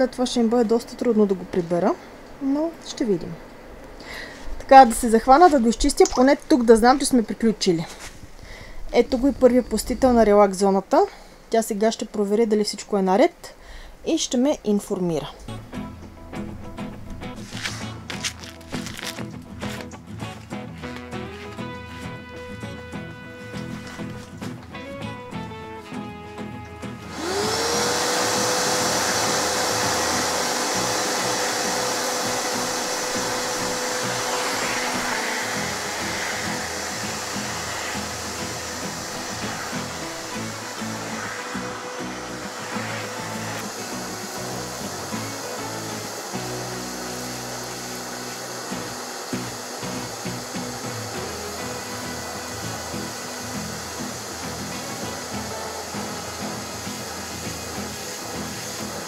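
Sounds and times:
vacuum cleaner motor whine: 0:26.9 - 0:59.0.

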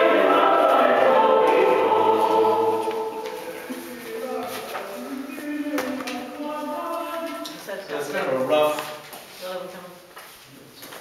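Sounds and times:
group singing a hymn: 0:00.0 - 0:07.5.

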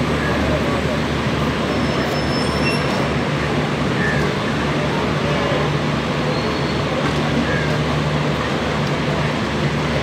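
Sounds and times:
train coaches rumbling on track: 0:00.0 - 0:10.0.

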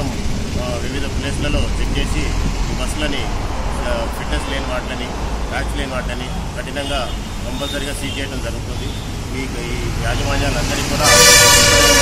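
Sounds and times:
road traffic rumble: 0:00.0 - 0:12.0
vehicle horn blast: 0:11.0 - 0:12.0.

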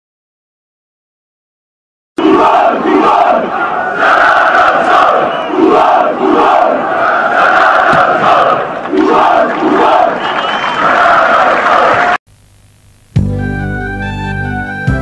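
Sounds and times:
crowd chanting in unison: 0:02.2 - 0:12.2.

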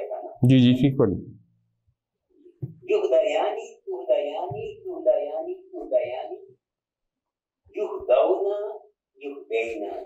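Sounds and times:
person speaking: 0:00.4 - 0:01.4.

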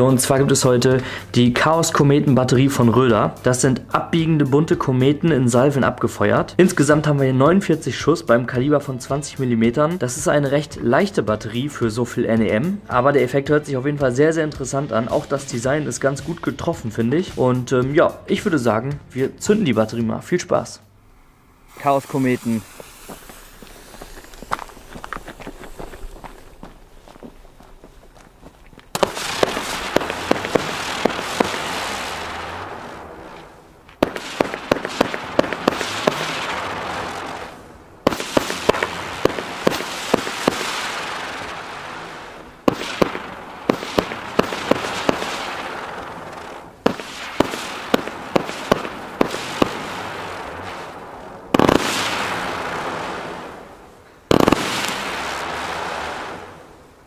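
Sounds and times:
firework rushing hiss: 0:21.0 - 0:26.9, 0:28.9 - 0:57.0
firework launch cracks: 0:21.6 - 0:26.8, 0:28.9 - 0:56.9.

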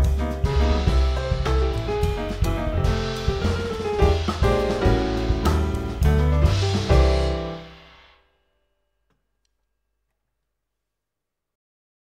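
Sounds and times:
jazz piano trio closing chord: 0:00.0 - 0:08.2.

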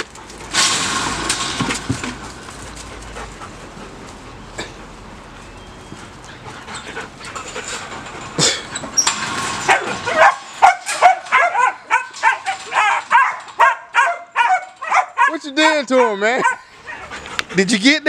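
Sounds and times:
puppy yapping: 0:09.7 - 0:17.3.

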